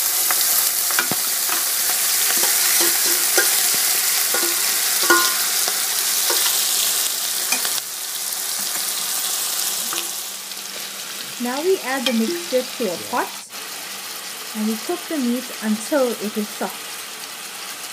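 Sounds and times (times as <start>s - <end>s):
meat sizzling in oil: 0.0s - 17.9s
spoon clinking and scraping: 0.3s - 7.8s, 9.8s - 10.2s.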